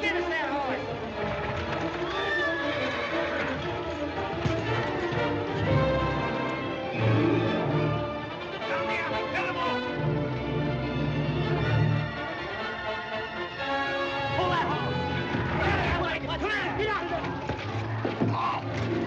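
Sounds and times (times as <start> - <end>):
buggy wheels on street: 0.0 - 7.0, 13.6 - 19.0
hooves on street: 0.0 - 8.7, 12.1 - 19.0
dramatic orchestral music: 0.0 - 19.0
horse whinnying: 1.7 - 7.4.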